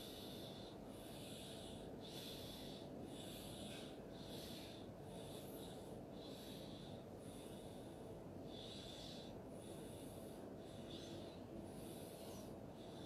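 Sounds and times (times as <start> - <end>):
low room hum: 0.0 - 13.0
soft breathing: 0.0 - 13.0.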